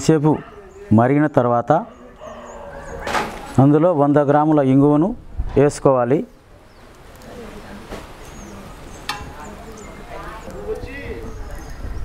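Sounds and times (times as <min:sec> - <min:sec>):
indistinct background voices: 0:00.0 - 0:04.5, 0:07.0 - 0:12.0.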